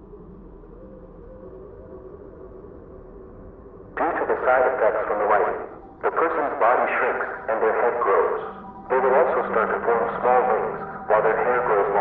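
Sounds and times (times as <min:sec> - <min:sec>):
low ambient drone: 0:00.0 - 0:12.0.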